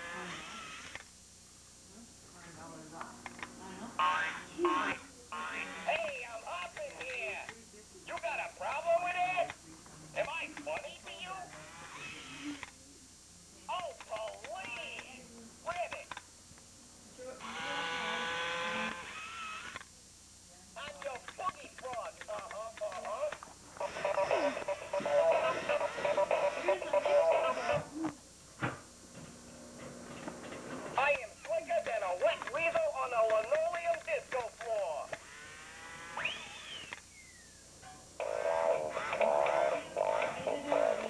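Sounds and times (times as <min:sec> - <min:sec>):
toy speaker electronic call: 0:04.0 - 0:07.3, 0:21.9 - 0:27.8, 0:38.2 - 0:41.0
faint electronic buzzing tone: 0:16.7 - 0:20.7, 0:34.8 - 0:41.0
electronic whistle-like glide: 0:36.2 - 0:37.6.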